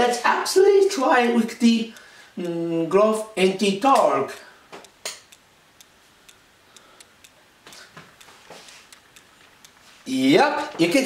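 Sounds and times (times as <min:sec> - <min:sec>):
faint ticking: 0:00.0 - 0:11.0.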